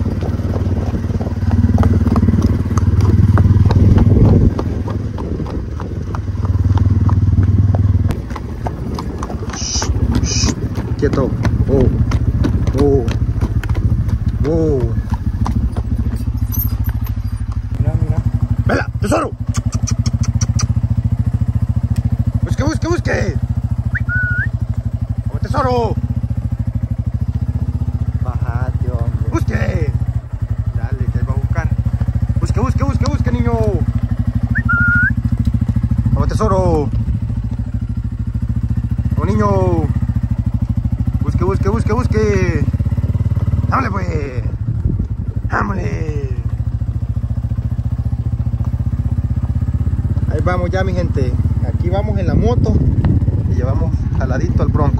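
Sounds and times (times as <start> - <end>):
drawn-out calls: 0.0 - 44.4
motorcycle engine running: 0.0 - 54.9.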